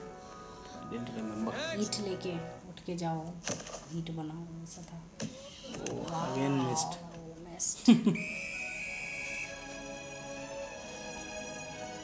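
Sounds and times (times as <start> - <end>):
film background music: 0.0 - 3.2, 8.2 - 12.0
coach's whistle blast: 8.2 - 9.6.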